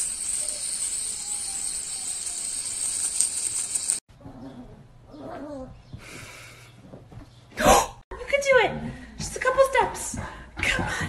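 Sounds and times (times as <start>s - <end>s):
steady high hiss: 0.0s - 4.0s.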